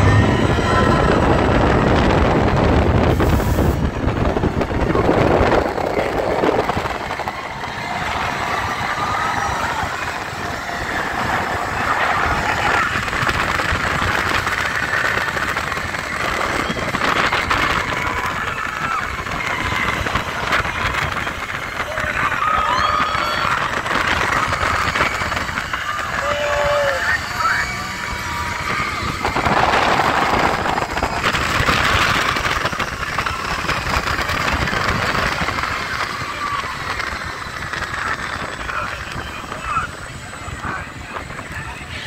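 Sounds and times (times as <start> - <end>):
riders shouting and whooping: 0.0 - 2.0, 4.8 - 42.0
ride car running on track: 0.0 - 42.0
rushing wind: 0.0 - 42.0.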